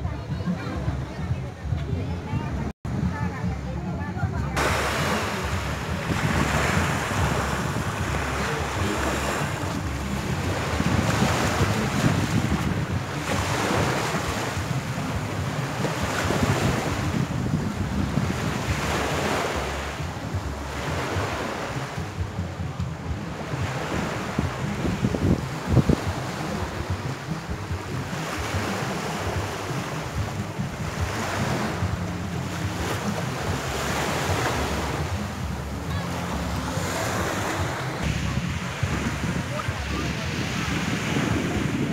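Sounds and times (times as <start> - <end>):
wind buffeting microphone: 0.0 - 41.9
small waves washing onto beach: 4.5 - 41.9.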